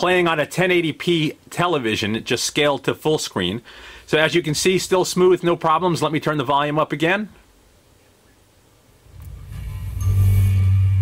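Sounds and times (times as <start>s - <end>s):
trailer soundtrack through tv speakers: 9.1s - 11.0s.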